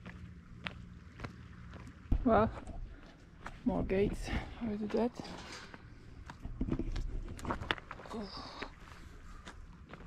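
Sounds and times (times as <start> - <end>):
footsteps on stony path: 0.0 - 10.0
woman's voice: 2.2 - 2.6, 3.6 - 5.4, 8.1 - 8.7.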